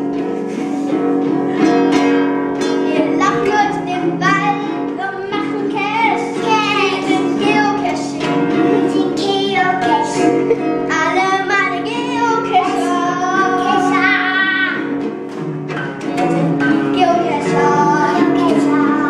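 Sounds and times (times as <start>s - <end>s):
children singing: 0.0s - 15.2s, 15.9s - 19.0s
strummed acoustic guitar: 0.0s - 19.0s.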